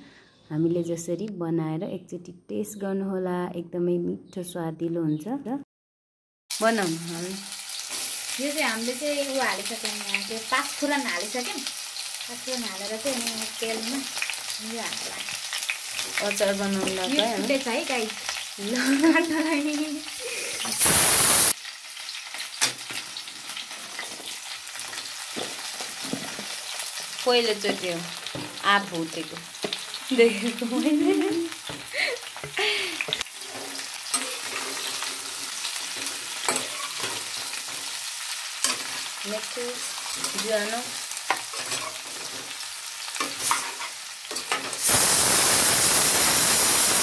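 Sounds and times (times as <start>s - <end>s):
food sizzling in oil: 6.5s - 47.0s
sudden loud hiss: 20.7s - 21.6s, 44.8s - 47.0s
metal spoon scraping wok: 33.3s - 38.0s, 39.9s - 44.9s.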